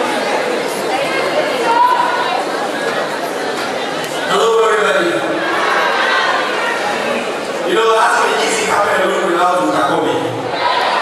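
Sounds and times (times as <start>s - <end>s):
audience talking and calling out: 0.0s - 11.0s.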